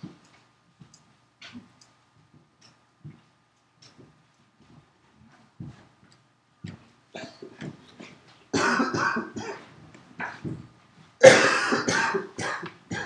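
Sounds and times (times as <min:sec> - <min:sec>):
person coughing: 0:08.6 - 0:10.5, 0:11.2 - 0:13.0.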